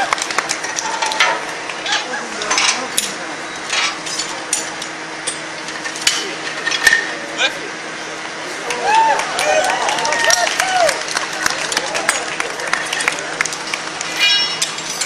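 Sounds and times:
crowd voices: 0.0 - 15.0
metal tools clinking: 1.0 - 7.1, 13.7 - 15.0.

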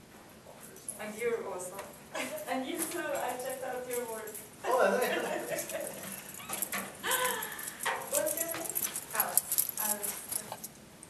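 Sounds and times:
voices talking: 2.2 - 10.5.

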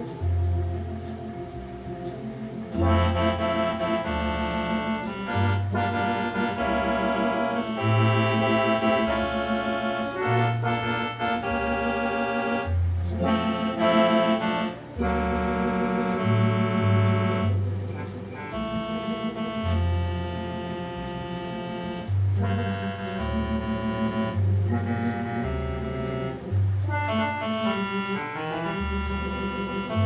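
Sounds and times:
electronic organ playing slow tune: 0.0 - 30.0.

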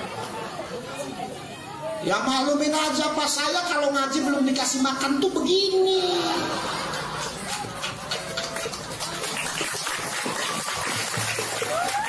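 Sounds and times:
faint voices: 0.0 - 2.1
audience laughing: 6.0 - 8.5
audience clapping: 6.8 - 12.0.

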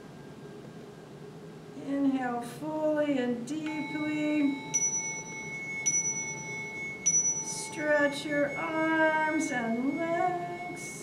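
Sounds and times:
handheld chime ringing: 3.7 - 11.0.

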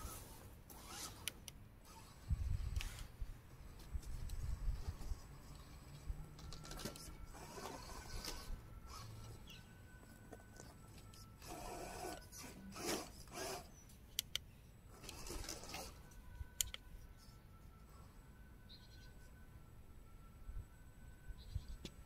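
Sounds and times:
small electric motor whirring: 0.0 - 13.8, 14.9 - 17.9
sharp clicks: 13.3 - 15.2.

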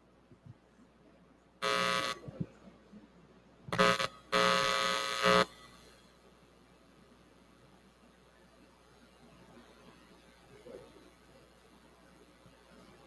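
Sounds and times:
loud electrical buzz: 1.6 - 2.5, 3.7 - 6.2.

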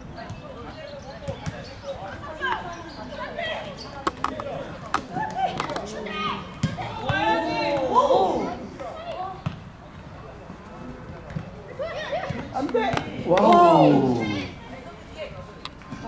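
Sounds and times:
voices shouting calls: 11.8 - 14.8.

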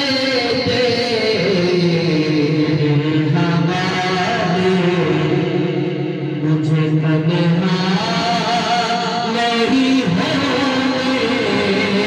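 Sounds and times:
men singing unaccompanied: 6.5 - 12.0.

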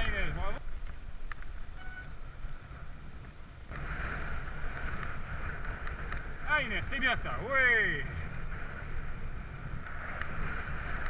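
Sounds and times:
bike tyre rumble: 0.0 - 11.0
wind buffeting microphone: 0.0 - 11.0.

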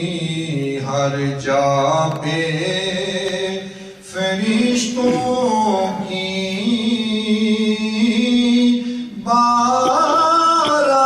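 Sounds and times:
man chanting unaccompanied: 0.0 - 11.0.

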